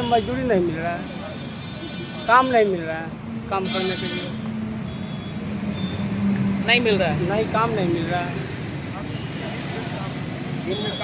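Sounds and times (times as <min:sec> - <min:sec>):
roadside traffic: 0:00.0 - 0:11.0
vehicle engine humming: 0:02.4 - 0:11.0.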